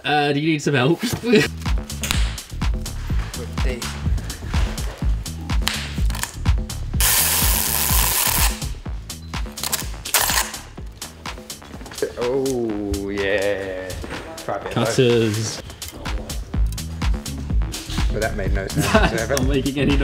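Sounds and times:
background music with beat: 1.2s - 20.0s
packing tape pulled off roll: 7.0s - 8.6s, 9.6s - 10.6s.

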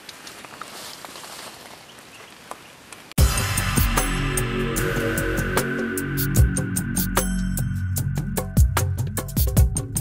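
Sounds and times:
dry leaves crackling: 0.0s - 3.1s.

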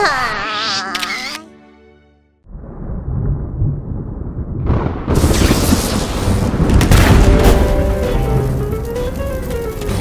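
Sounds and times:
cartoon thunder rumble: 2.5s - 9.6s
crackle: 2.5s - 10.0s.

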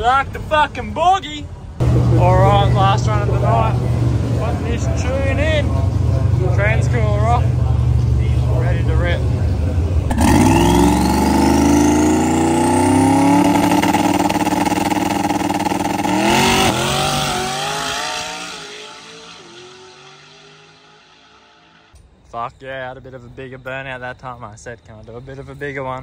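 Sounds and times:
drag car engine revving: 10.0s - 21.9s.

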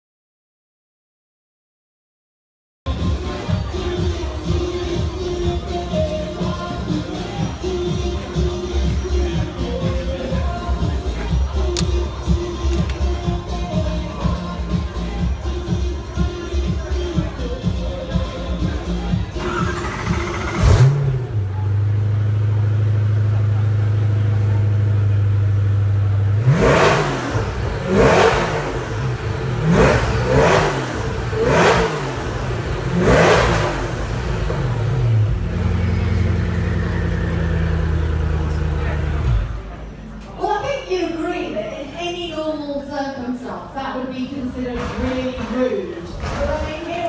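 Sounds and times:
car engine starting and idling: 2.9s - 40.2s
engine revving: 19.4s - 24.3s, 26.1s - 39.6s.

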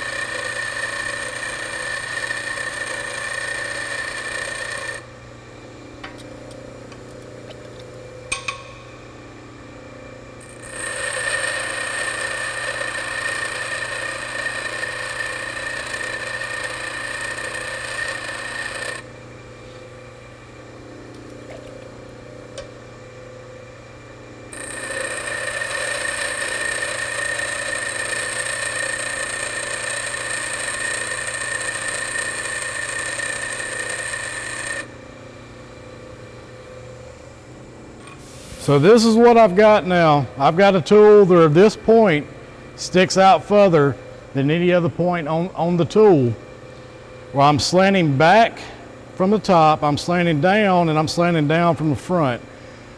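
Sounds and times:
tool bit grinding on wheel: 0.0s - 5.0s, 10.4s - 19.0s, 24.5s - 34.9s
bench grinder running: 0.0s - 5.1s, 10.4s - 19.2s, 24.4s - 35.0s, 38.1s - 43.7s.

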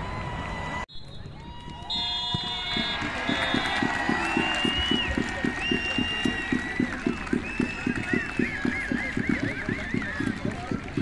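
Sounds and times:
crowd noise: 0.0s - 11.0s
referee whistle blasts: 0.9s - 10.0s.

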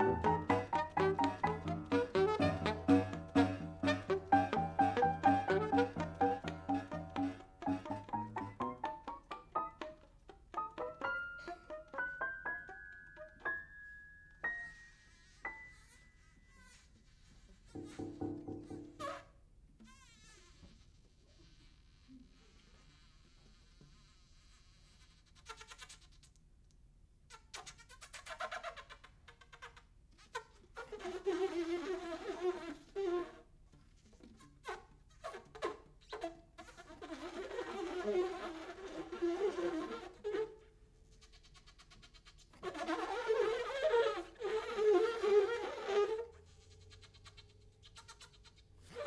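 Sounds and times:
quiet saxophone tone: 0.0s - 13.5s, 14.4s - 26.1s.

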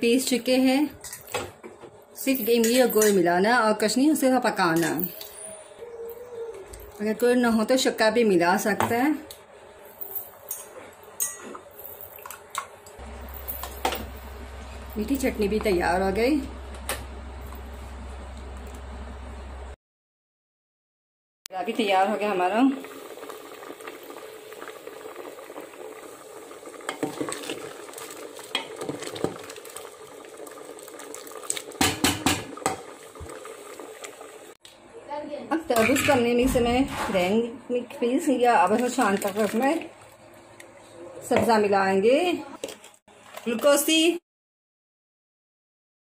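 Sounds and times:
low steady hum: 11.2s - 19.8s
liquid bubbling in a pot: 22.2s - 34.6s
ladle stirring: 26.9s - 33.4s.

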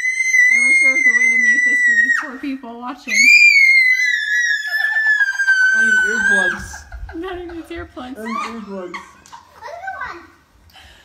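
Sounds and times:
child screaming gleefully: 0.0s - 2.3s, 3.1s - 6.9s.

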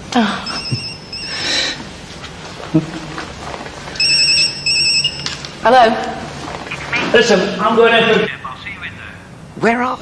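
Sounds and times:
phone ringtone trilling: 0.5s - 1.8s, 4.0s - 5.4s.

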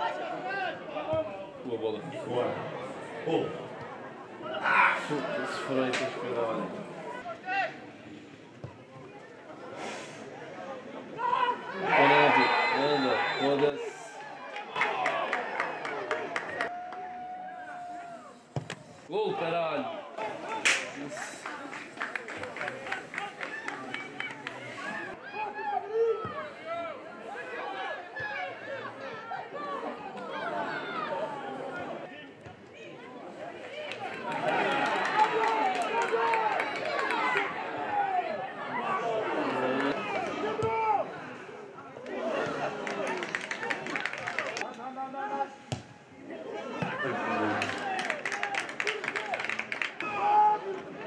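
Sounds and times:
crowd shouting: 2.8s - 6.0s, 10.8s - 18.4s, 19.2s - 32.1s, 32.8s - 44.6s, 46.4s - 51.0s.

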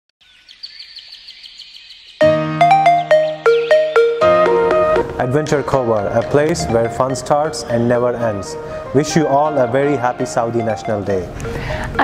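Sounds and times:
bird chirping rapidly: 0.2s - 2.4s, 3.1s - 4.2s.

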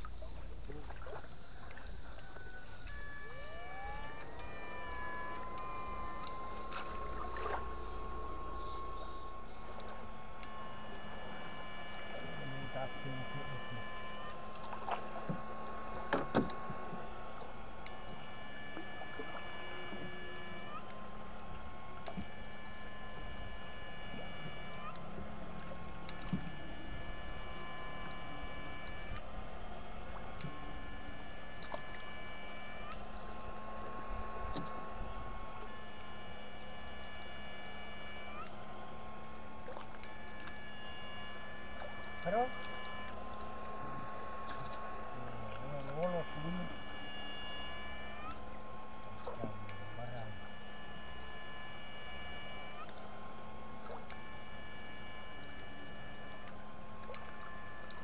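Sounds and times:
electrical hum: 0.0s - 58.0s
high-pitched electronic whine: 0.0s - 58.0s.

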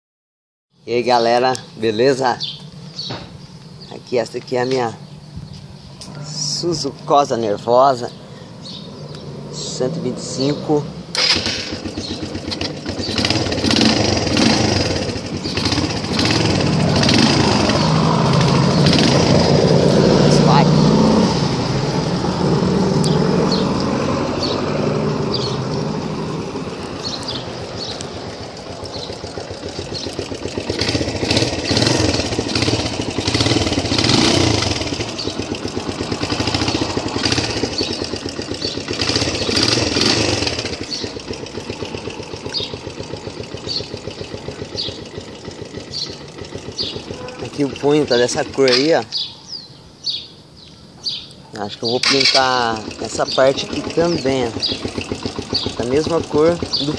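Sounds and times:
motorcycle engine revving: 1.0s - 50.2s, 51.8s - 56.9s.

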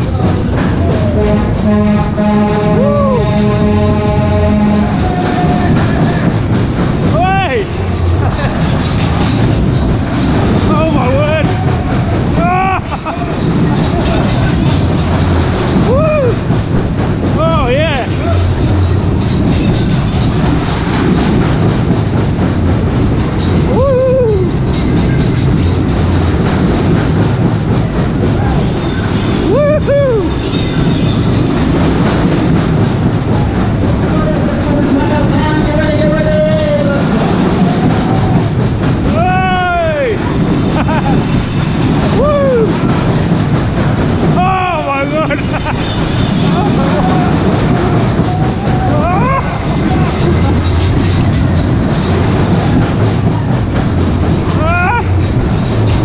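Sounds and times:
fairground ride rumbling: 0.0s - 56.0s
music playing: 0.0s - 56.0s
riders crying out: 11.2s - 14.7s, 44.3s - 50.7s, 54.4s - 55.2s.

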